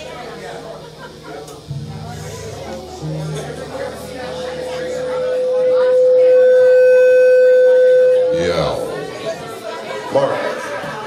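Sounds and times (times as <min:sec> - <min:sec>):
crowd chatter: 0:00.0 - 0:11.0
guitar amplifier feedback whine: 0:00.0 - 0:11.0.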